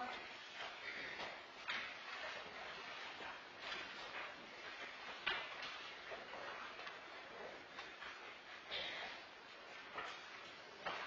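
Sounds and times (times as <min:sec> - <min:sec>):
quiet shuffling: 0:00.0 - 0:11.0.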